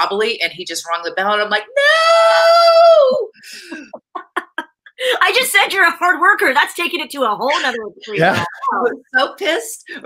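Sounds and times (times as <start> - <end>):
woman wailing: 1.8 - 3.3.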